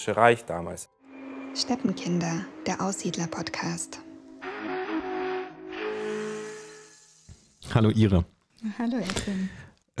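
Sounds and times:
held chord of steady tones: 1.1s - 5.4s.

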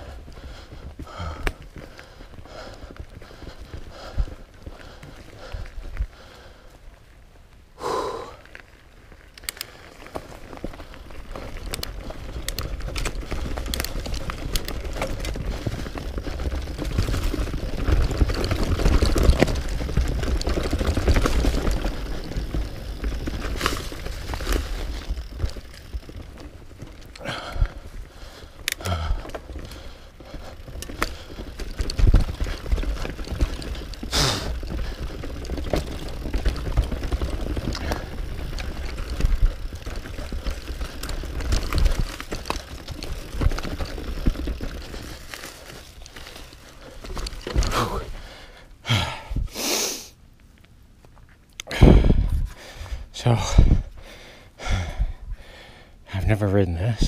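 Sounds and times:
bike tyres rolling rumble: 0.0s - 57.0s
wind rumble on microphone: 51.7s - 54.0s.

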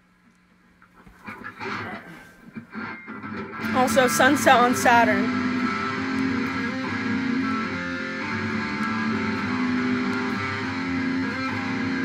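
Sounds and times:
electric guitar chords: 1.4s - 12.0s.

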